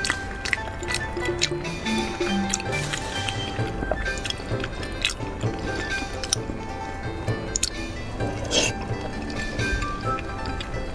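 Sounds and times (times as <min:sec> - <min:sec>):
mouth clicks: 0:00.0 - 0:06.7, 0:07.3 - 0:10.8
background music: 0:00.0 - 0:10.9
wet chewing: 0:00.0 - 0:10.9.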